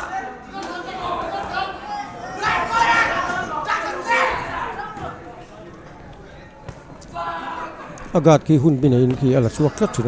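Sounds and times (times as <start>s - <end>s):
low hall sound: 0.0s - 10.0s.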